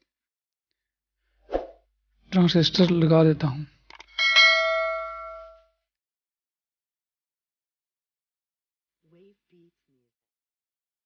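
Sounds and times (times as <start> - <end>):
bell ding: 4.2 - 5.7.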